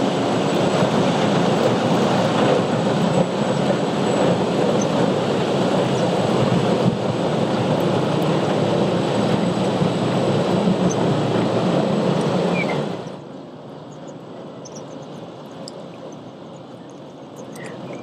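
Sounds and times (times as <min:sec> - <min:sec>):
cargo ship engine rumble: 0:00.0 - 0:18.0.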